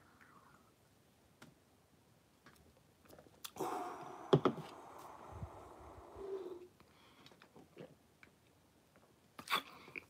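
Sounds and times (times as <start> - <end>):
man breathing out heavily: 3.6 - 7.1.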